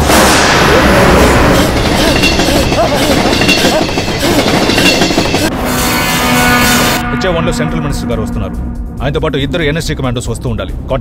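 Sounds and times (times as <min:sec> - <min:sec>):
train rail noise: 0:00.0 - 0:05.9.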